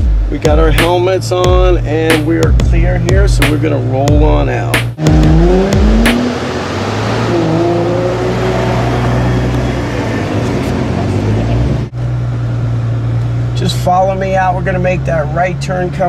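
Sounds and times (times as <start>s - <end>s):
car engine humming: 0.0s - 16.0s
road noise: 0.0s - 16.0s.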